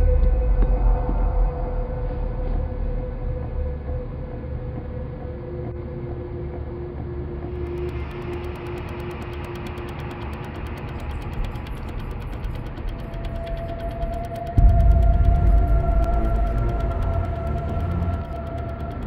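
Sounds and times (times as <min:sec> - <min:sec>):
dark droning horror score: 0:00.0 - 0:19.0
fast even ticking pulse: 0:07.6 - 0:19.0.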